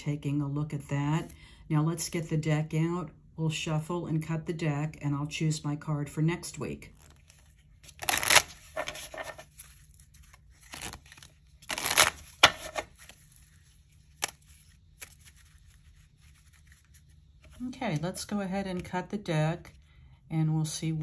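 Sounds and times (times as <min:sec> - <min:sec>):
playing cards being shuffled: 0:06.9 - 0:17.7.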